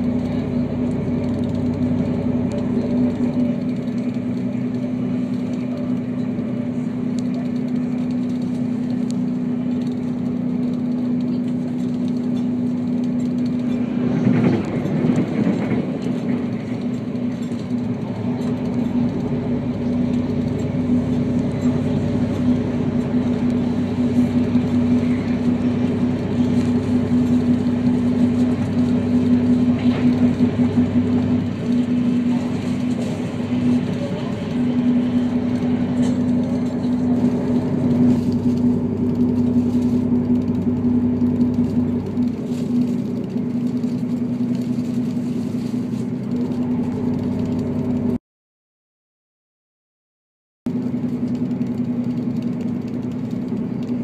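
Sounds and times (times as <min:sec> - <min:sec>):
diesel railcar engine droning: 0:00.0 - 0:48.2, 0:50.7 - 0:54.0.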